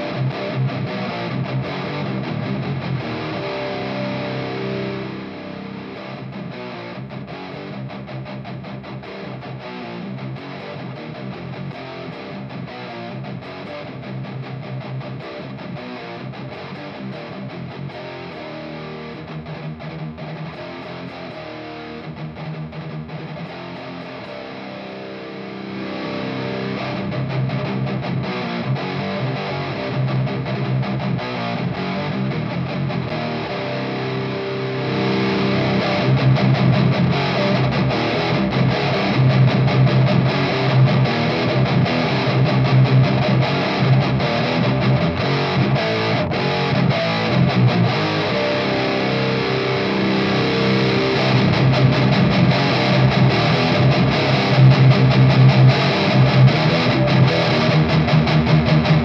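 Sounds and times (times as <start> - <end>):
distorted electric guitar riffing: 0.0 - 59.0.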